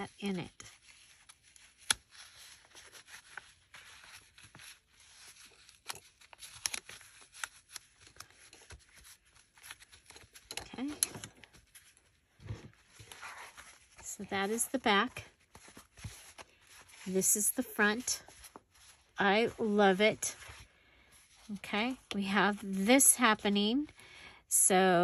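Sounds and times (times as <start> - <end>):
paper and fabric rustling: 0.0 - 24.0.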